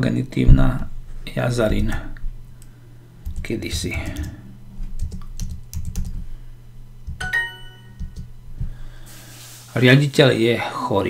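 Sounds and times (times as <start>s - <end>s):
computer keyboard typing: 3.2s - 4.4s, 5.0s - 6.2s, 7.0s - 7.3s, 7.9s - 8.3s.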